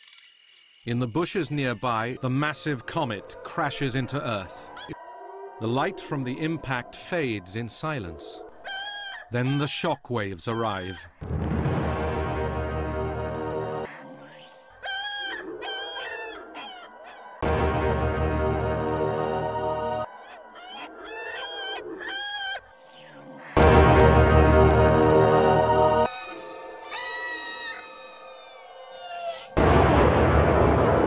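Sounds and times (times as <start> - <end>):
chicken squawking: 8.6 - 9.7, 14.3 - 17.4, 20.1 - 23.6, 26.0 - 29.6
meow-like animal cry: 26.1 - 29.6.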